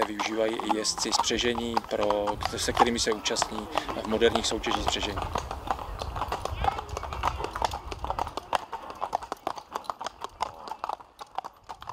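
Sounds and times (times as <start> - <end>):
hooves clip-clopping on pavement: 0.0 - 11.9.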